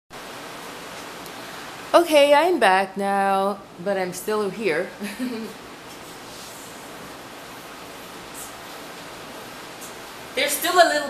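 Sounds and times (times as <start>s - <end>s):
woman speaking: 2.0s - 5.1s, 10.4s - 11.0s
steady hiss: 4.1s - 11.0s.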